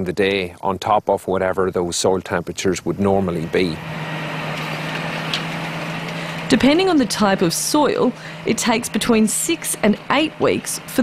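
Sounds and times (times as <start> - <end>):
tractor engine droning: 2.6 - 11.0.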